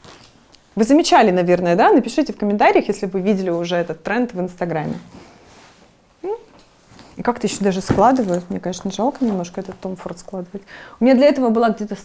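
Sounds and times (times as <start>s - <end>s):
leather bag rustling: 6.7s - 10.0s.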